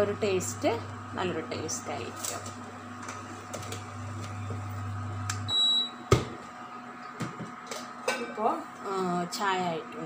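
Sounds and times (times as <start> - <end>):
induction cooktop humming: 0.0 - 10.0
high beep: 5.5 - 6.0.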